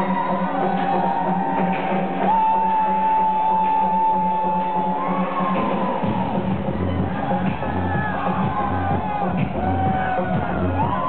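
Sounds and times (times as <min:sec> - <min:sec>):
deep bass: 0:00.0 - 0:11.0
electronic dance music: 0:00.0 - 0:11.0.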